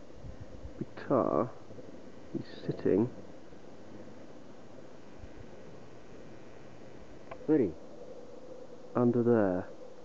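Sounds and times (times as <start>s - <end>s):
wind hiss: 0.0s - 10.0s.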